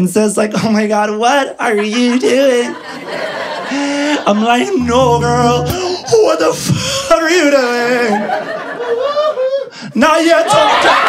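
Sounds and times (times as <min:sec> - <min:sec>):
people laughing: 0:01.7 - 0:04.8, 0:08.0 - 0:09.7, 0:10.4 - 0:11.0.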